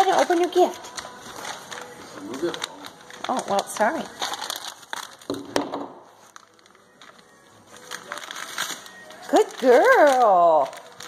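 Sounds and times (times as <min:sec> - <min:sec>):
wrapping paper crinkling: 0:00.0 - 0:11.0.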